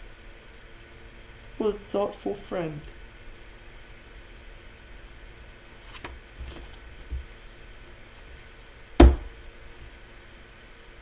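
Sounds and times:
sharp knock on desk: 9.0s - 9.3s.

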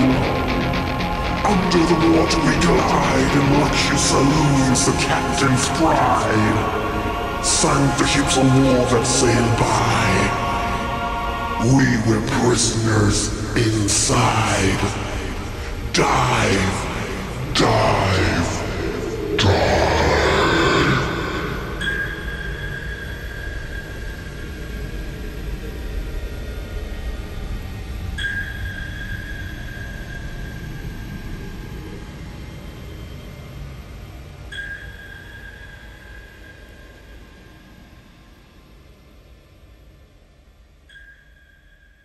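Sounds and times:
low rumble: 0.0s - 23.2s
sonar-style pings: 18.4s - 25.6s, 27.9s - 31.5s, 34.4s - 37.9s, 40.7s - 42.0s.

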